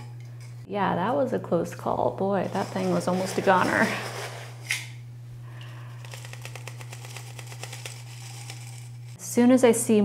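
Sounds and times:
steady low hum: 0:00.0 - 0:10.0
granules dropping into glass jar: 0:06.0 - 0:09.2.

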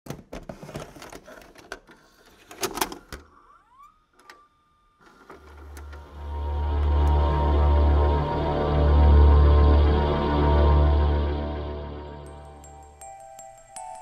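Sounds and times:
tape mechanism clicks and clunks: 0:04.1 - 0:06.2
low droning horror music: 0:05.8 - 0:13.1.

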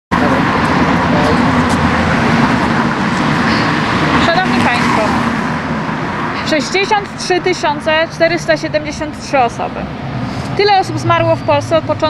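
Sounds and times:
street traffic noise: 0:00.1 - 0:12.0.

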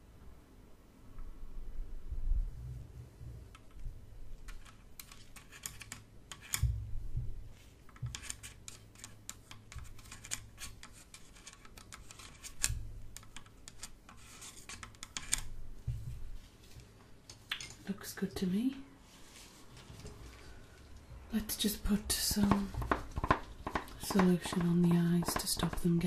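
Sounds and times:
scratching and rubbing: 0:04.5 - 0:06.6, 0:07.6 - 0:15.5, 0:22.4 - 0:26.0
soft low thumps: 0:06.7 - 0:07.5
rustling: 0:19.0 - 0:21.2
gloved hands clicking: 0:22.5 - 0:25.9.

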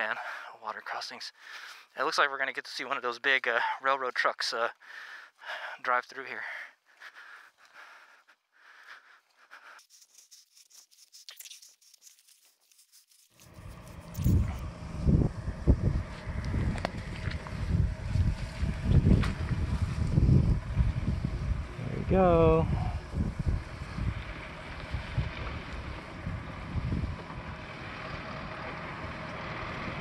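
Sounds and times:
faint rustles: 0:07.0 - 0:15.2
wind buffeting microphone: 0:14.2 - 0:27.7.

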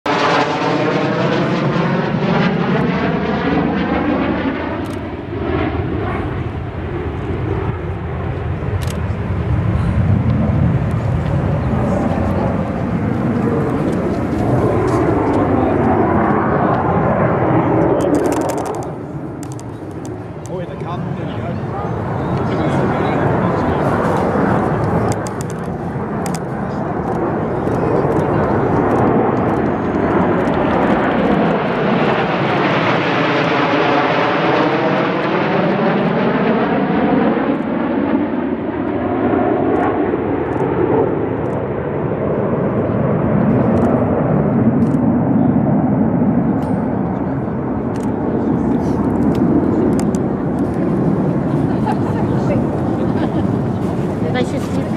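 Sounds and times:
jets flying over: 0:00.1 - 0:54.9.

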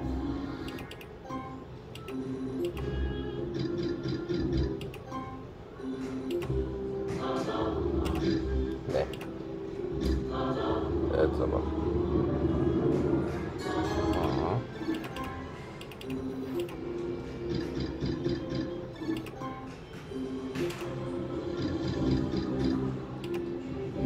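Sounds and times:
slot machine electronic melody: 0:00.8 - 0:05.4, 0:12.7 - 0:19.7.

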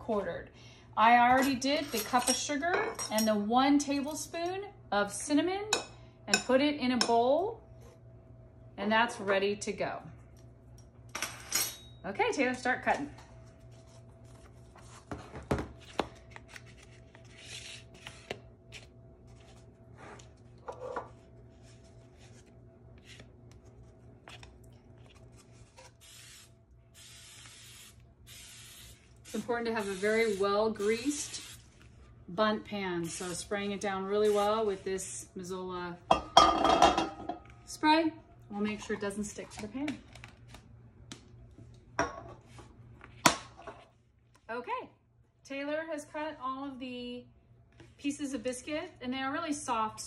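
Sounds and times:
aerosol cooking spray hissing: 0:26.0 - 0:31.6.

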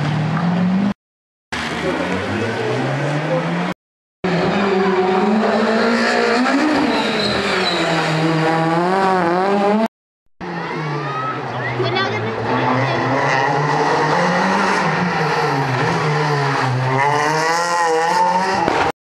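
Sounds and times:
rally car engine revving: 0:01.6 - 0:18.9.

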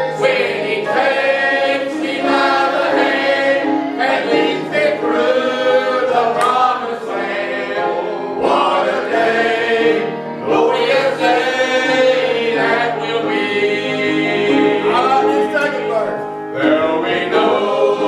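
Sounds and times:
congregation singing a hymn: 0:00.0 - 0:18.0.

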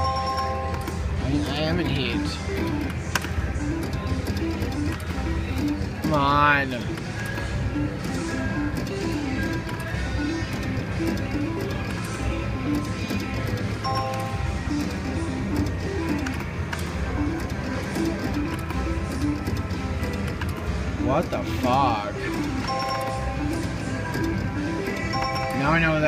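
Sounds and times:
electronic slot machine tune: 0:00.0 - 0:26.0
low casino hum: 0:00.0 - 0:26.0
win chime: 0:22.7 - 0:23.4, 0:25.0 - 0:26.0.

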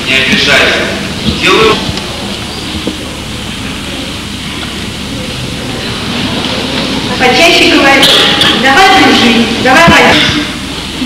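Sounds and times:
murmur of crowd in a gym: 0:00.0 - 0:11.0.

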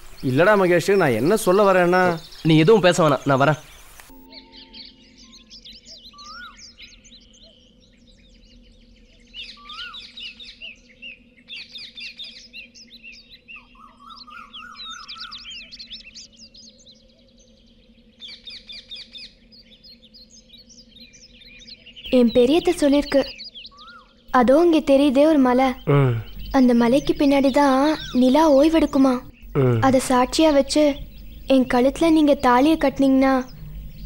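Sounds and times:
small birds chirping: 0:00.0 - 0:34.0
faint steady low hum: 0:19.4 - 0:34.0.

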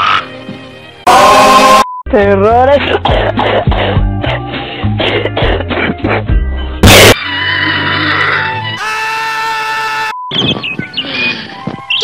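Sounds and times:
cartoon soundtrack music: 0:00.0 - 0:10.2.

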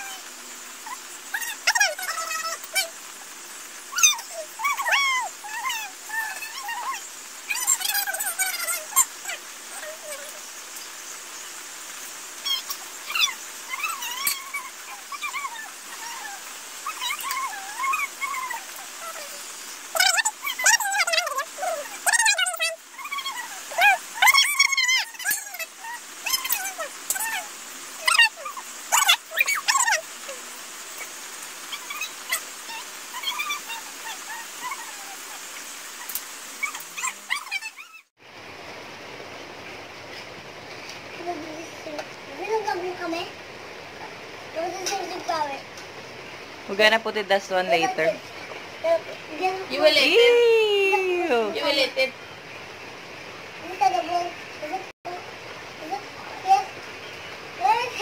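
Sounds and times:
dog whimpering and whining: 0:12.6 - 0:19.4, 0:20.0 - 0:31.1.

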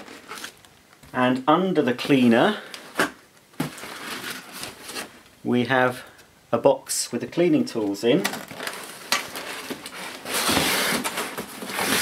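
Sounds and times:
cardboard box scraping: 0:09.4 - 0:12.0.

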